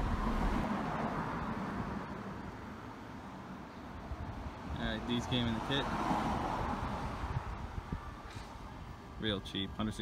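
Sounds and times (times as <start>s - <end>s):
wind buffeting microphone: 6.6s - 8.4s.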